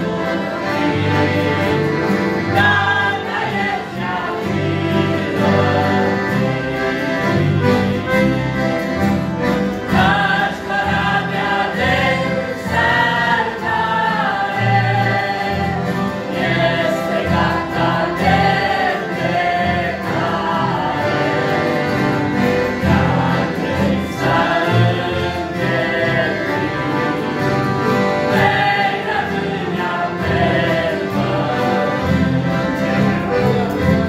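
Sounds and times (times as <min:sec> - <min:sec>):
mixed choir singing: 0:00.0 - 0:08.4, 0:09.8 - 0:34.0
acoustic guitar: 0:00.0 - 0:34.0
piano accordions: 0:00.0 - 0:34.0.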